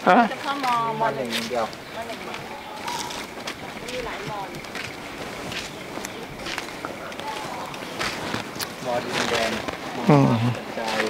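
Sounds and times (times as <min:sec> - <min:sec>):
faint voices: 0:00.0 - 0:11.0
sandal footsteps on pavement: 0:00.0 - 0:11.0.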